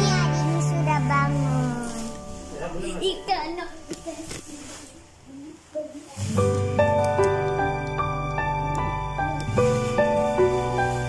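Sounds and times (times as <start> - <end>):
young children chattering: 0.0 - 6.3
faint background music: 0.0 - 11.0.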